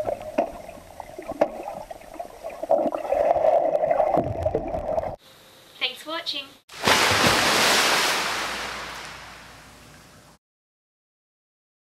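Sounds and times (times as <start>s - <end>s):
underwater pool water rushing: 6.7s - 9.6s.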